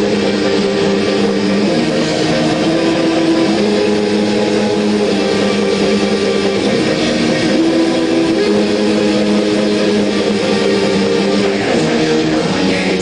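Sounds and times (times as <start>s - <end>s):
electric guitar chords: 0.0s - 13.0s
loud live rock band: 0.0s - 13.0s.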